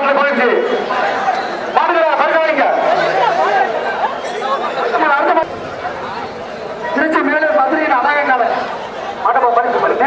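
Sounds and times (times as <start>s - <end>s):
crowd chatter: 0.0s - 10.0s
men talking over one another: 0.0s - 10.0s.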